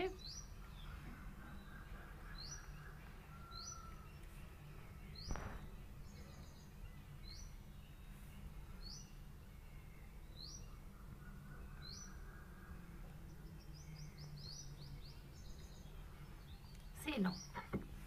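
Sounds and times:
bird chirping: 0.0 - 18.0
faint low hum: 0.0 - 18.0
sharp knock: 5.2 - 5.7.

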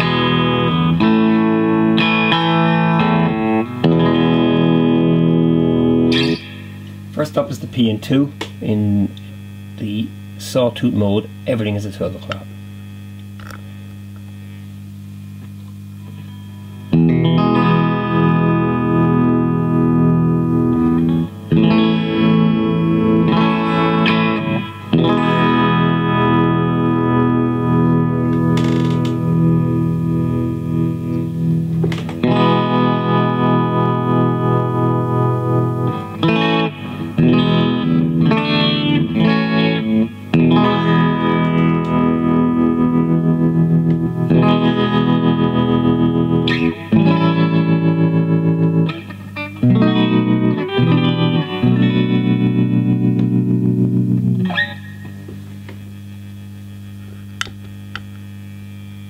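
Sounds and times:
electric guitar with tremolo: 0.0 - 10.4, 12.4 - 59.0
amp hum: 0.0 - 59.0.

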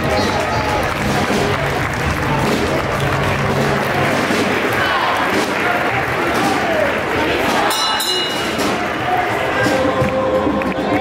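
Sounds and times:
applause: 0.0 - 11.0
crowd noise: 0.0 - 11.0.

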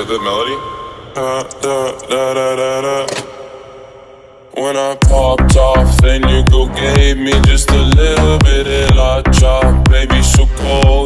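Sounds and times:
song playing: 5.0 - 11.0.

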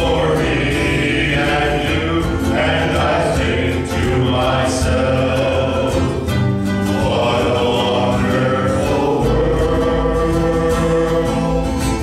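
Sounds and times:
guitar accompaniment: 0.0 - 12.0
men's choir singing: 0.0 - 12.0.

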